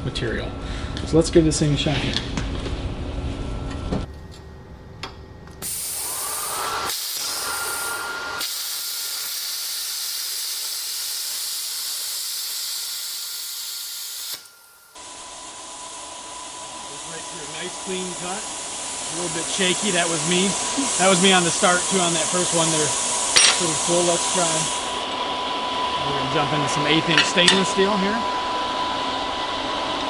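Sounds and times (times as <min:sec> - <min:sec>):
plasma cutter arc hissing: 0:05.6 - 0:25.0.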